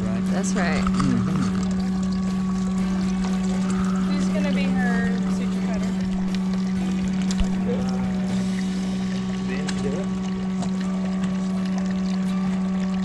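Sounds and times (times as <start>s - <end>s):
water pump humming: 0.0s - 13.0s.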